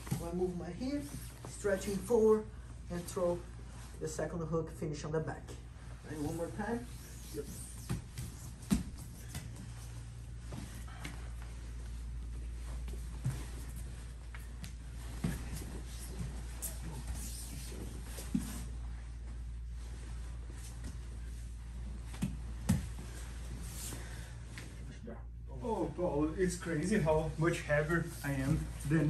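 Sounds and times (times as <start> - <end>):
steady low hum: 0.0 - 29.0
cloth rustling and scuffing: 5.9 - 24.8
bodies thumping on mat: 7.8 - 9.7, 12.8 - 17.1, 22.0 - 23.3.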